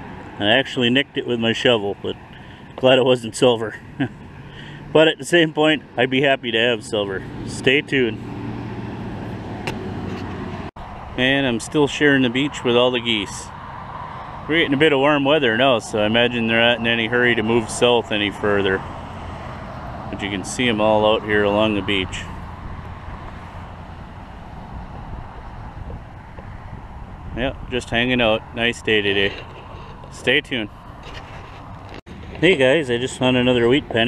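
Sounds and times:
highway traffic: 0.0s - 34.0s
wind on microphone: 22.3s - 30.1s.

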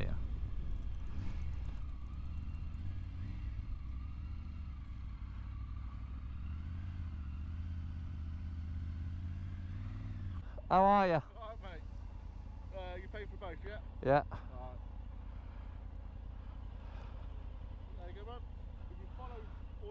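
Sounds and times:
motorcycle engine at low speed: 0.0s - 19.9s.

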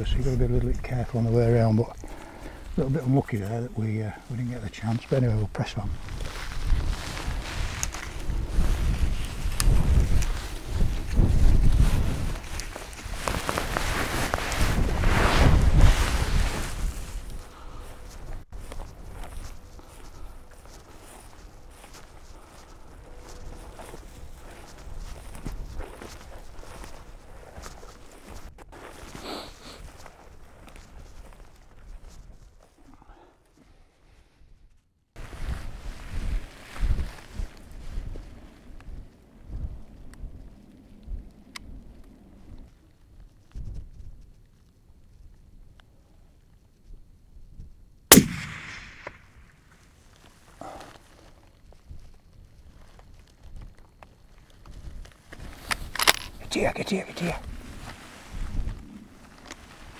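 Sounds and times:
wind buffeting microphone: 5.8s - 17.5s, 35.2s - 44.4s, 57.4s - 59.9s
rifle shot: 48.1s - 49.6s.

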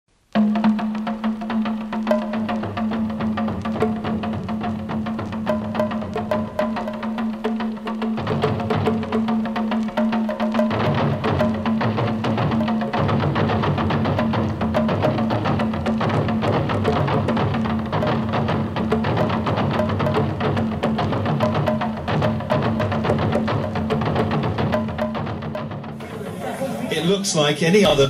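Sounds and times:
music with fast percussion beat: 0.3s - 27.2s.

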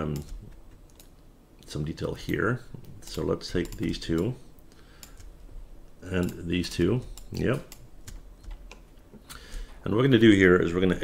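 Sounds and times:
man talking: 0.0s - 0.4s, 1.6s - 4.5s, 6.0s - 7.8s, 9.8s - 11.0s
keyboard and mouse clicks: 0.1s - 1.2s, 2.2s - 4.4s, 5.0s - 5.4s, 6.1s - 9.6s.

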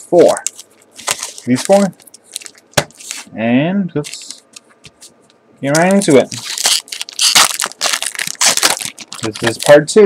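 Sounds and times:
foil wrapper crinkling and tearing: 0.4s - 3.3s, 5.8s - 10.0s.

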